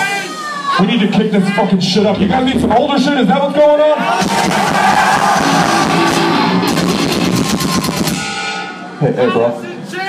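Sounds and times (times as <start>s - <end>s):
rapid drum hits: 4.2s - 8.7s
heavy metal band playing live: 4.2s - 9.0s.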